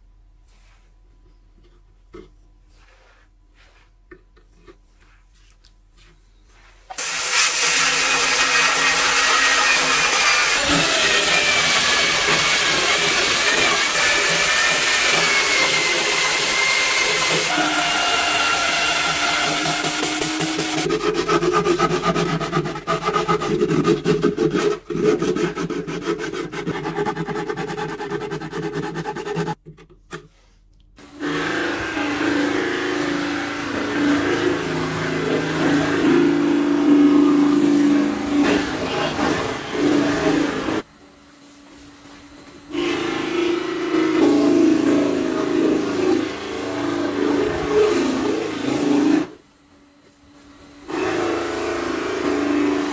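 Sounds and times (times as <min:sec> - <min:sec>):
drill motor whine: 0:07.0 - 0:21.0, 0:42.0 - 0:52.9
sanding disc hissing on wood: 0:07.0 - 0:29.6.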